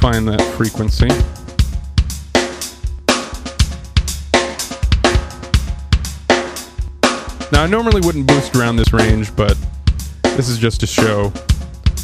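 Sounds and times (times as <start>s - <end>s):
drum kit loop: 0.0s - 12.0s.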